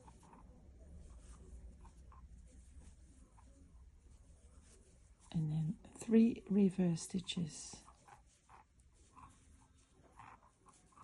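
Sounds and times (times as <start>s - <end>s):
low room hum: 0.0s - 11.0s
yarn scratching on crochet hook: 0.0s - 11.0s.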